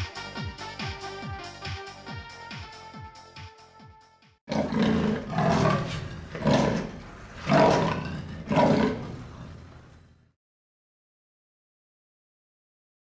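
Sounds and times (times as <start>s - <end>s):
big cat roaring: 4.5s - 10.0s.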